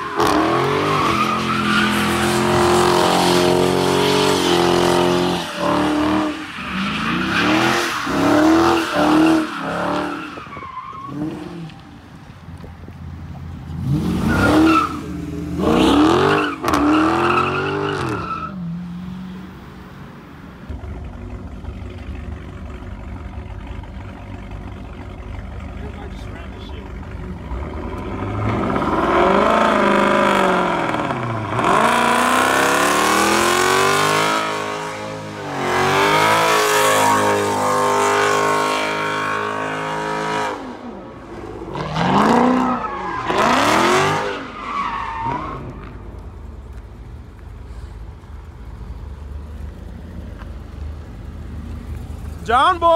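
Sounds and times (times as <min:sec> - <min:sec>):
car engines revving hard: 0:00.0 - 0:12.0, 0:13.6 - 0:19.2, 0:20.7 - 0:46.9
tyres squealing on pavement: 0:00.0 - 0:12.1, 0:14.0 - 0:18.8, 0:41.7 - 0:46.1.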